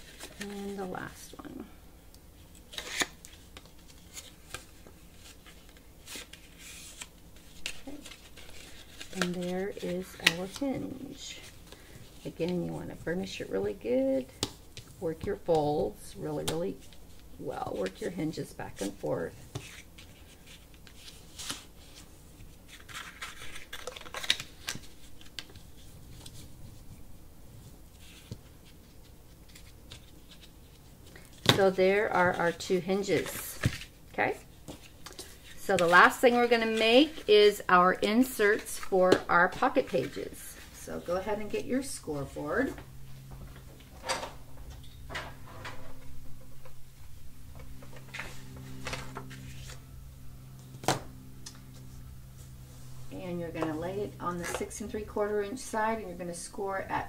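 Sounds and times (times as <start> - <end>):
low steady hum: 0.0 - 57.0
paper rustling and scraping: 2.6 - 12.3, 16.7 - 26.9, 27.6 - 43.9, 47.6 - 50.0.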